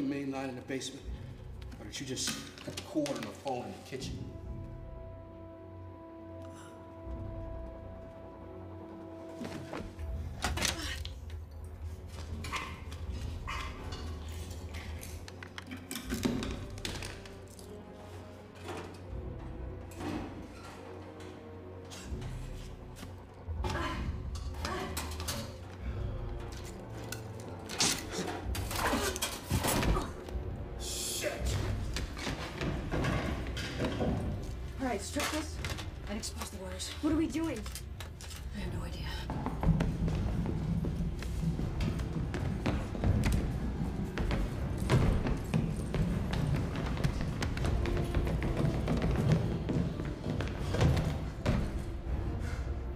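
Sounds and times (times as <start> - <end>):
tense film score: 0.0 - 52.9.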